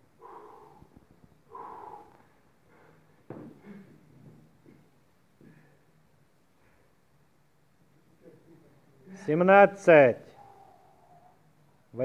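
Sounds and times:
man breathing: 0.0 - 4.3, 5.4 - 7.2
man exhaling forcefully: 0.2 - 3.0.

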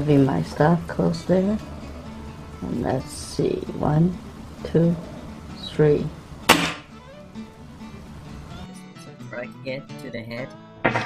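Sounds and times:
air rifle shot crack: 6.5 - 6.9.

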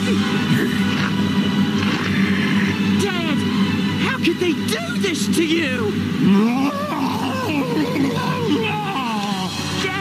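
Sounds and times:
man growling: 6.2 - 9.7.

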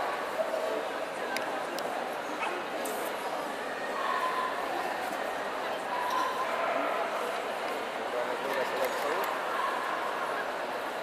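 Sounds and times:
murmur of crowd voices: 0.0 - 11.0.

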